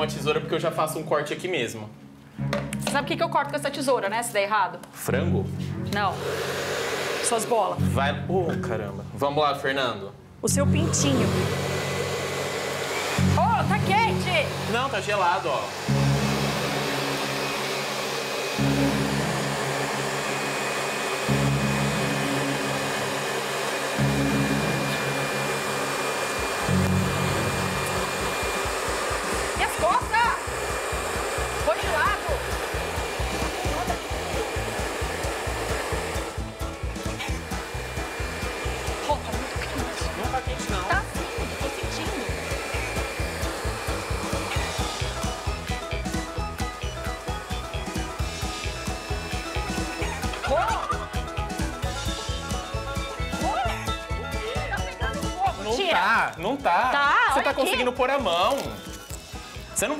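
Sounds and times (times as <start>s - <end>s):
hair dryer blowing: 5.7s - 7.9s, 10.6s - 59.9s.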